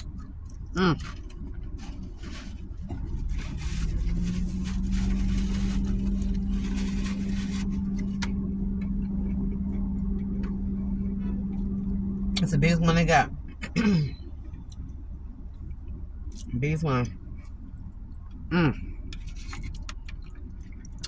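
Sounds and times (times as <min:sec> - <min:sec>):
handling and rustling in car: 0:00.0 - 0:16.2, 0:19.1 - 0:20.8
low rumble: 0:00.0 - 0:21.0
steady low hum: 0:00.0 - 0:21.0.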